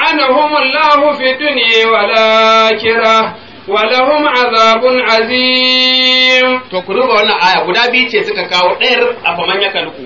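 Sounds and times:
man chanting through loudspeakers: 0.0 - 9.0.

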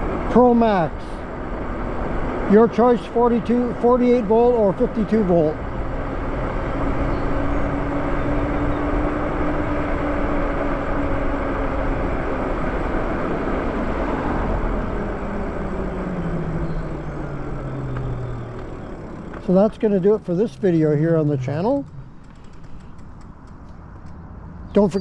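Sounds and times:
electric motor whine: 5.6 - 19.5.

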